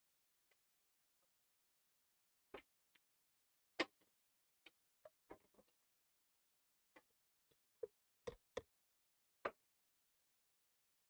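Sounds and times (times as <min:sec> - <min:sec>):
faint short clicks and taps: 0:07.8 - 0:08.7.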